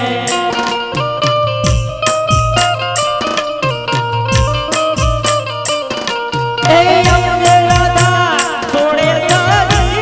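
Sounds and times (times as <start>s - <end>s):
hand drum beating: 0.0s - 10.0s.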